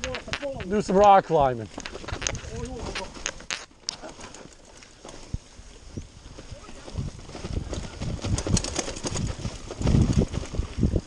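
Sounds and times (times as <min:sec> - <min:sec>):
bike tyre rumble on dirt trail: 0:00.0 - 0:11.0.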